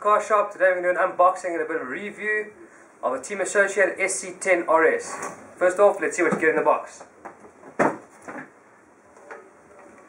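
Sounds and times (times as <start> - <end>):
cardboard box knocks and rustles: 7.6 - 8.5.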